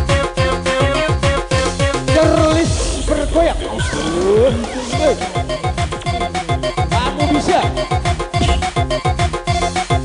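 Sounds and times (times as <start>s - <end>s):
swooping synth effects: 2.6s - 8.3s
dance beat: 3.6s - 10.0s.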